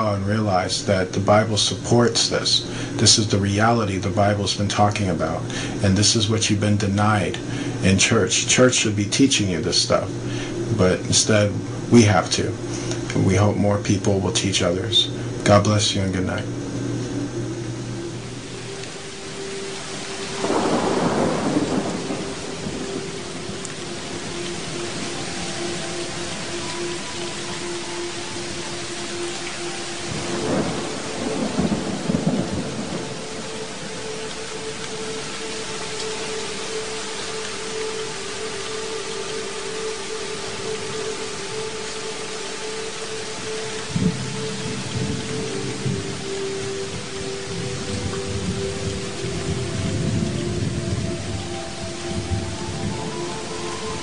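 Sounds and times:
steady rain: 0.0 - 54.0
sustained musical drone: 0.0 - 54.0
thunder rolling: 15.0 - 29.3, 29.9 - 37.6, 43.6 - 54.0.

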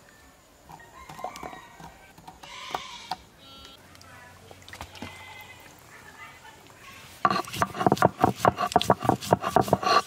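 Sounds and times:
stone grinder scraping: 7.2 - 10.0.

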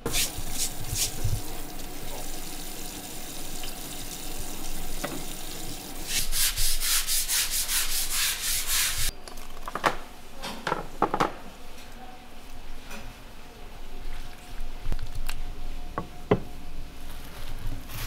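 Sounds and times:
brush scrubbing plastic board: 0.1 - 1.4, 6.0 - 9.1.

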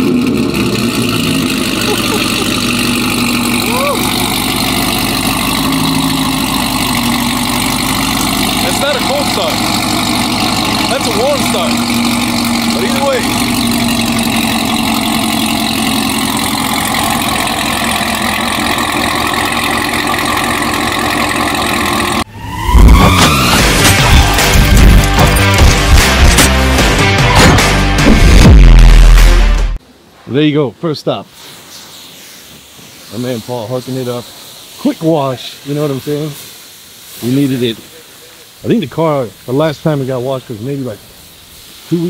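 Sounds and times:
car engine idling: 0.0 - 29.8
loud music: 22.1 - 29.8.

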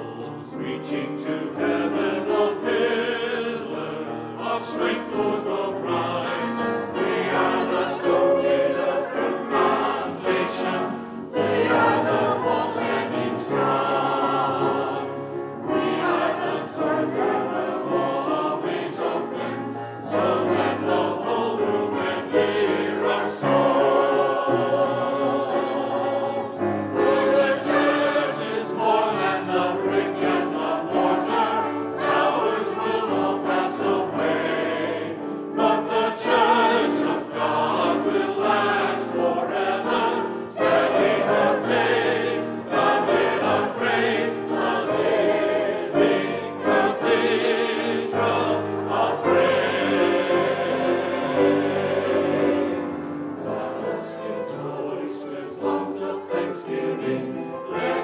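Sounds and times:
grand piano: 0.0 - 58.0
mixed choir singing in parts: 0.0 - 58.0.

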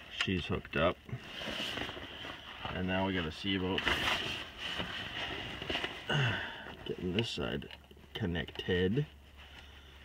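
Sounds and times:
faint rustling and handling: 0.0 - 10.0.

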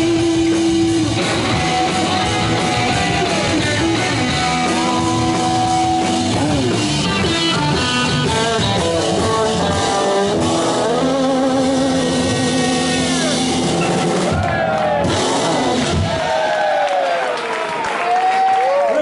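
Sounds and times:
electric guitar sustained notes: 0.0 - 16.4
drums: 0.0 - 18.5.

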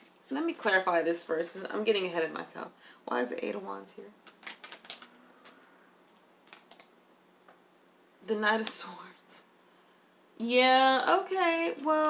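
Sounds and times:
cards shuffled by hand: 4.2 - 6.9.

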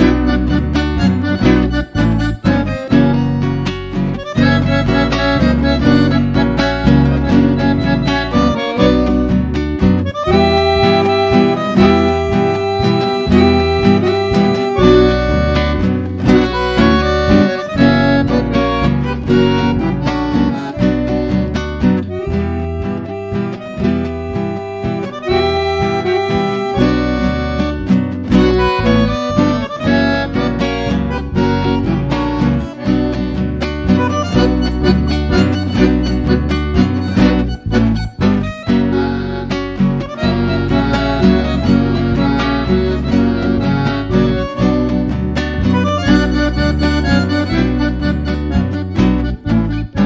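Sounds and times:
acoustic guitar strumming: 0.0 - 50.0
bandoneon melody: 0.0 - 50.0.

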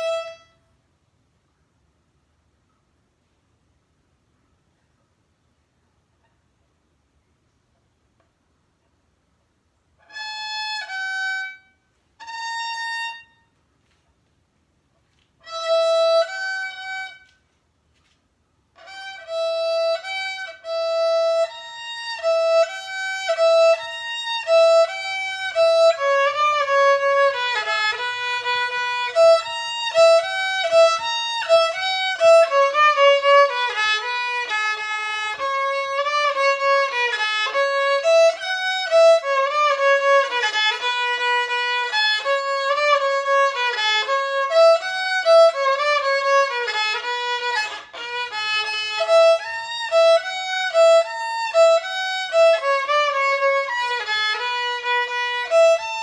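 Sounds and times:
solo violin melody: 0.0 - 0.7, 10.0 - 13.6, 15.4 - 17.6, 18.7 - 56.0.

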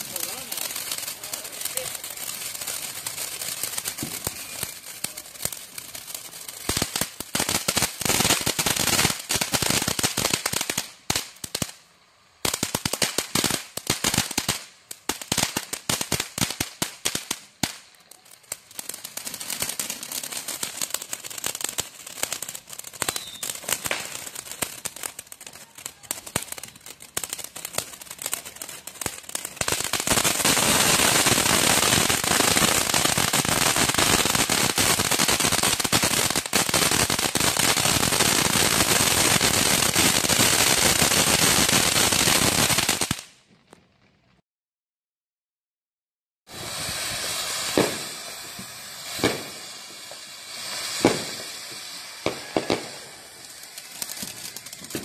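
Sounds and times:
fireworks crackling and popping: 0.0 - 44.4, 46.5 - 55.0.

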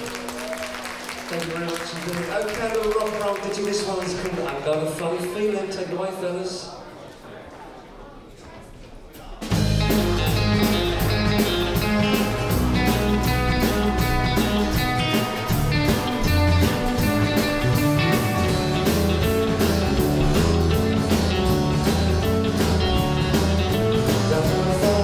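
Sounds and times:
bass guitar: 9.4 - 25.0
drum kit steady beat: 9.4 - 25.0
electric guitars: 9.6 - 25.0.

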